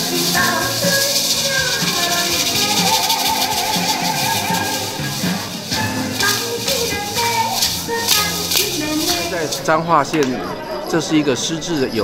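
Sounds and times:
maracas rattling: 0.0s - 10.4s
lively music: 0.0s - 10.8s.

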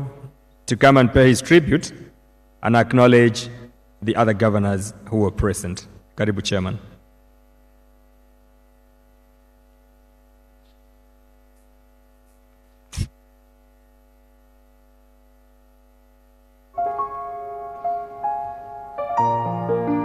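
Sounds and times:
faint steady hum: 0.0s - 20.0s
keyboard music: 16.8s - 20.0s.

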